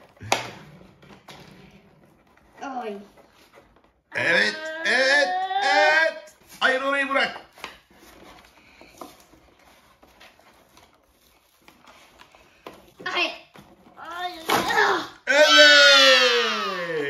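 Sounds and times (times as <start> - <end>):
cardboard packaging handling: 7.4 - 14.7.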